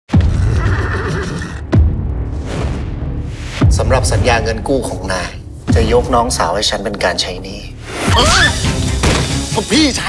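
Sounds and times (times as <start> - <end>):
dramatic trailer music: 0.1 - 10.0
horse whinnying: 0.4 - 1.6.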